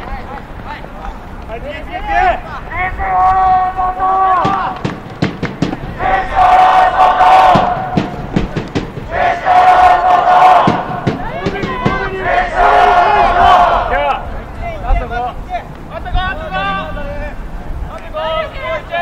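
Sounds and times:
sharp claps: 0:04.4 - 0:06.2, 0:07.3 - 0:12.1
young men chanting in unison: 0:05.8 - 0:08.4, 0:09.1 - 0:14.3.

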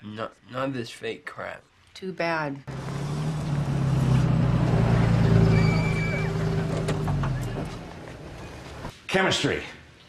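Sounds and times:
vehicle engine humming: 0:02.7 - 0:08.9.

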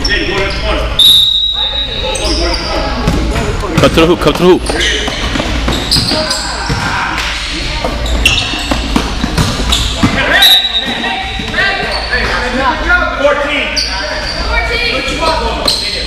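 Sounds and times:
sneakers squeaking on floor: 0:00.0 - 0:12.6, 0:13.4 - 0:16.0
indistinct spectators' voices: 0:00.0 - 0:16.0
basketball bouncing: 0:03.0 - 0:07.0, 0:07.8 - 0:11.6.

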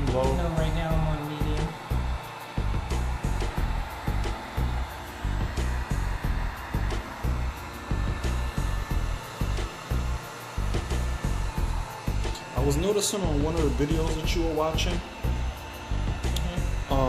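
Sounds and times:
background music bass beat: 0:00.0 - 0:17.0
heat gun blowing hiss: 0:00.0 - 0:17.0.

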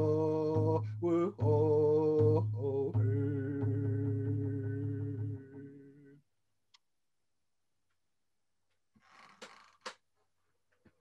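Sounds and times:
man singing a held note: 0:00.0 - 0:06.2.

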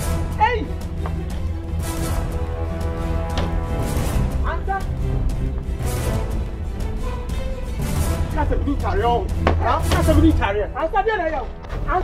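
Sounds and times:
sharp knock: 0:09.4 - 0:10.1.

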